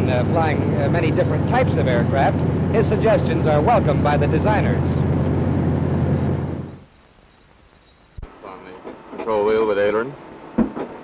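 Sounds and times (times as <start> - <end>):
propeller plane engine droning: 0.0 - 7.2.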